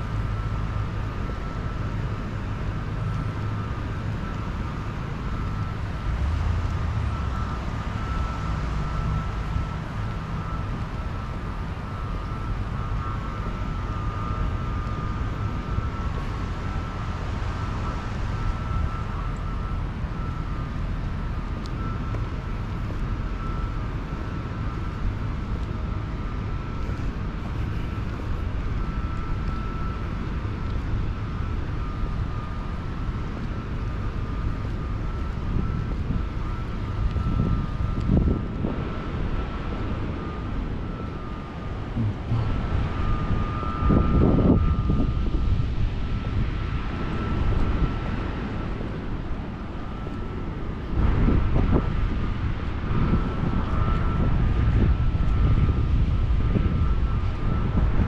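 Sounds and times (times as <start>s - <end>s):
wind rumbling on microphone: 0.0s - 58.0s
outdoor rushing noise: 35.4s - 58.0s.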